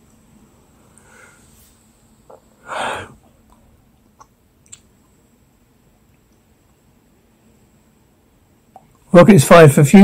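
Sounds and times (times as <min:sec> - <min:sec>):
person taking sharp breath: 0:02.6 - 0:03.2
faint mouth click: 0:03.5 - 0:04.9.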